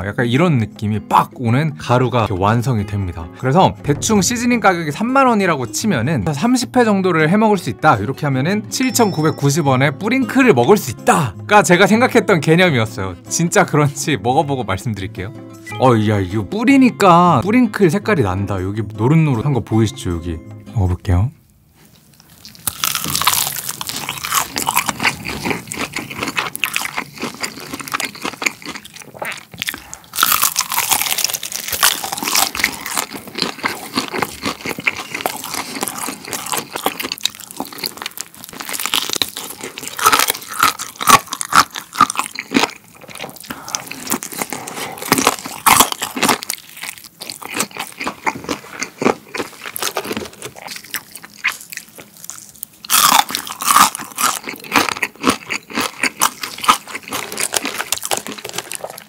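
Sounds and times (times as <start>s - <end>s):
crunching and chewing crispy chicken: 21.9s - 59.0s.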